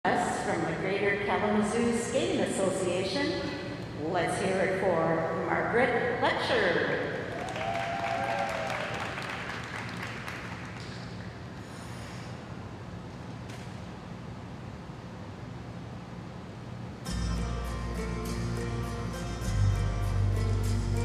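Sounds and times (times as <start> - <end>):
light applause: 7.2 - 11.3
skating program music: 17.0 - 21.0.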